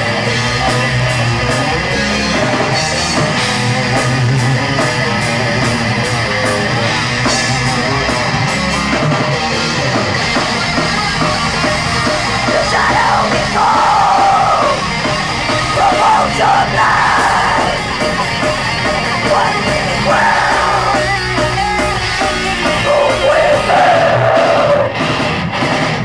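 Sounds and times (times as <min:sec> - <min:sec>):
distorted electric guitars: 0:00.0 - 0:26.0
drum kit: 0:00.0 - 0:26.0.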